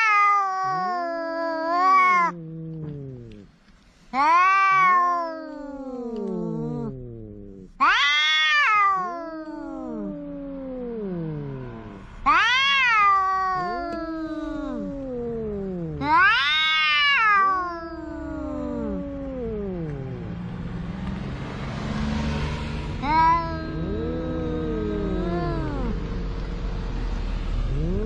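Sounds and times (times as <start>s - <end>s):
cats high-pitched wails: 0.0s - 3.5s, 4.1s - 20.4s, 23.0s - 26.1s, 27.6s - 28.0s
cats yowling: 0.0s - 3.5s, 4.1s - 20.5s, 23.0s - 26.1s, 27.6s - 28.0s.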